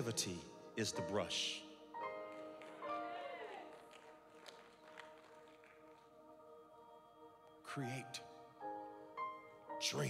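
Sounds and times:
faint background music chords: 0.0 - 10.0.

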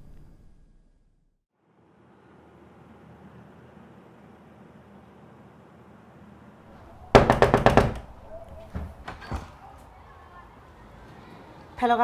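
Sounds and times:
knuckles knocking on wooden door: 7.1 - 8.1.

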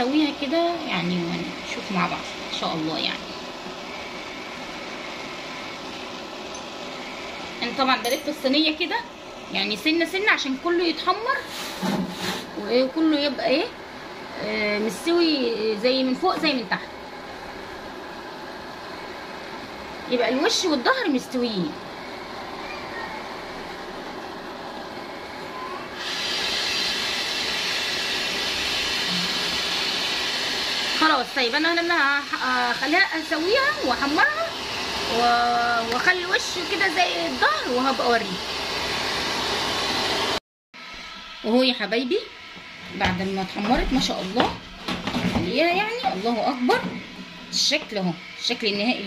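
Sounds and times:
gas burner flame rushing: 0.0 - 40.4.

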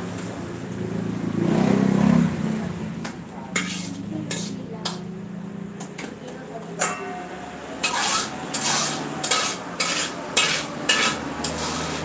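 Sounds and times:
metal utensil scraping a pot: 3.5 - 4.7, 7.8 - 12.0.

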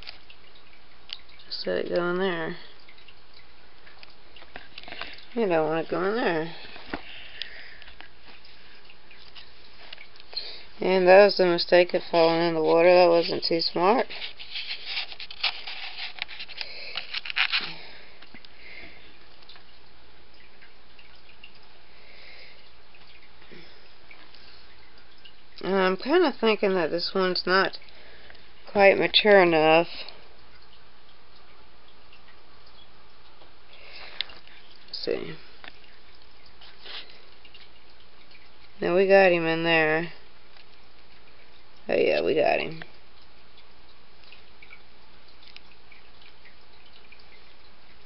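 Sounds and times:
steady faint hiss: 0.0 - 48.0.

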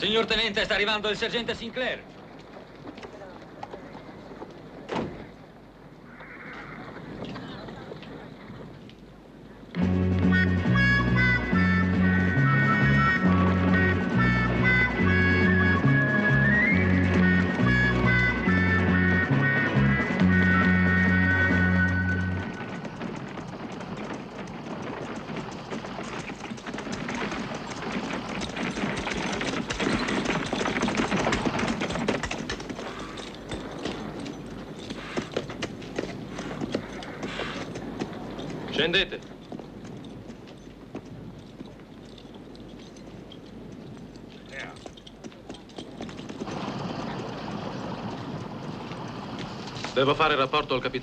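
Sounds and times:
horse hooves clopping: 0.0 - 51.0
cart rattling: 9.8 - 51.0.

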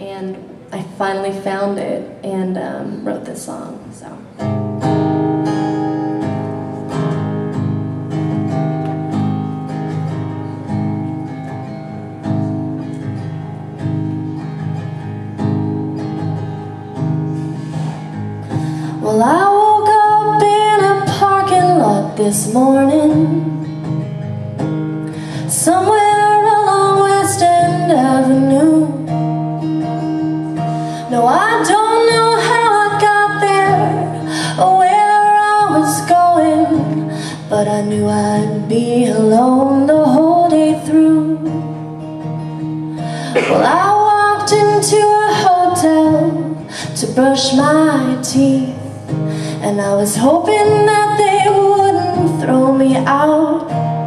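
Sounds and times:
acoustic guitar strumming chords: 4.3 - 26.1, 41.6 - 47.0.

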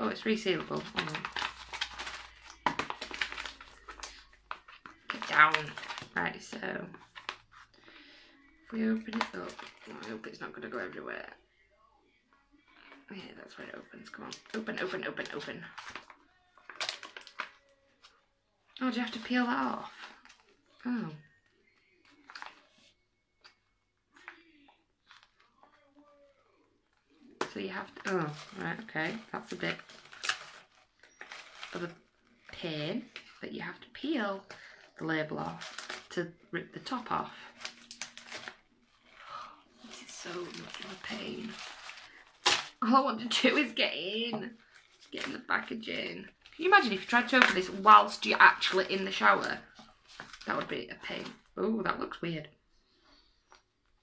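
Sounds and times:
plastic packaging crackling: 0.0 - 7.8, 8.7 - 10.3, 13.7 - 18.2, 21.6 - 23.6, 24.2 - 51.5
plastic pouch crinkling: 0.2 - 7.8, 14.0 - 18.2, 27.0 - 51.5.

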